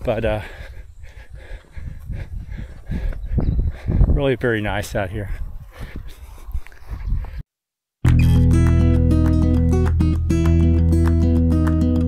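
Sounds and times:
footsteps on trail: 0.0 - 3.9
runner breathing: 0.0 - 4.4, 5.1 - 7.4
wind rumble on microphone: 0.9 - 7.4.

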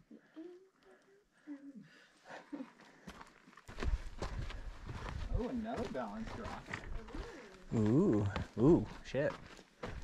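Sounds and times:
footsteps on sandy dirt trail: 2.6 - 10.0.

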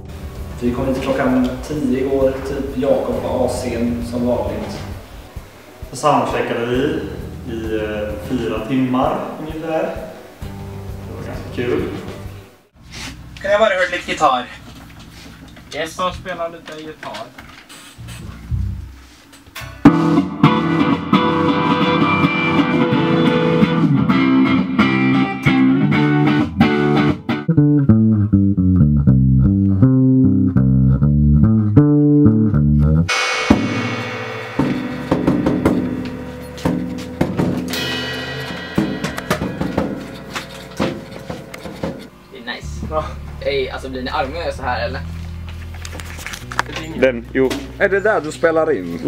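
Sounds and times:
indie rock band music: 19.6 - 42.3.

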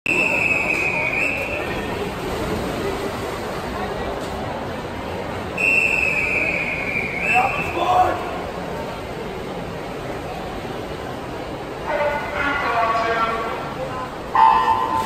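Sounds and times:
referee's whistle long blasts: 0.1 - 1.6, 5.6 - 7.8
crowd murmur: 0.1 - 15.0.

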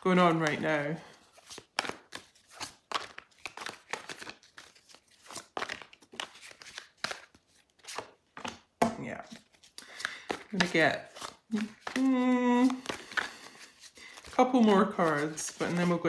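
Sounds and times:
cards being shuffled: 0.2 - 16.0.

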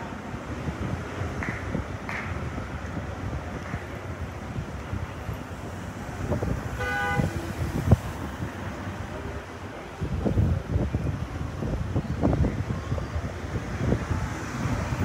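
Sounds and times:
street traffic noise: 0.0 - 15.0
wind on microphone: 0.0 - 15.0.

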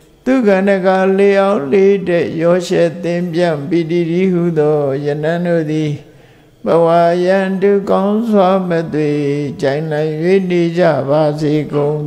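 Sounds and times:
man chanting: 0.2 - 12.0.

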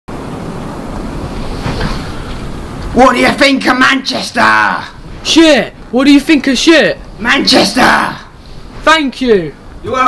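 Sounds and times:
wind buffeting microphone: 0.1 - 10.0.

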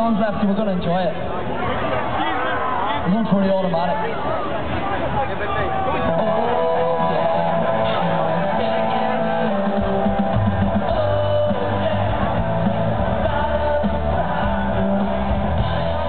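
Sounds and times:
electric guitar: 6.0 - 16.0
live rock band playing: 6.0 - 16.0.

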